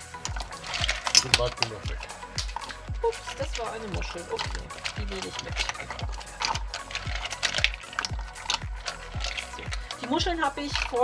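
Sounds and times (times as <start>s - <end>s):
background music with voice: 0.0s - 11.0s
mussels splashing into broth: 0.0s - 11.0s.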